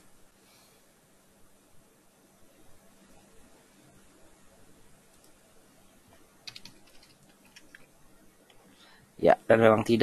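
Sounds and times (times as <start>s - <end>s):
computer keyboard typing: 5.0s - 5.4s, 6.4s - 8.6s.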